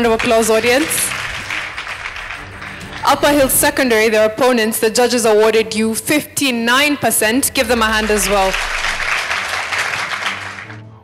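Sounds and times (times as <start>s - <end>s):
audience applause: 0.1s - 3.8s, 7.7s - 10.9s.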